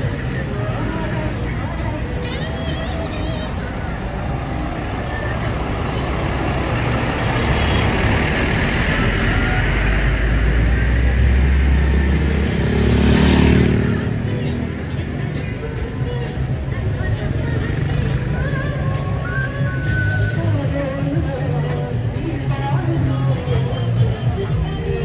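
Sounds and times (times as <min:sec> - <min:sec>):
diesel coach engine rumbling: 0:00.0 - 0:25.0
faint street voices: 0:00.0 - 0:25.0.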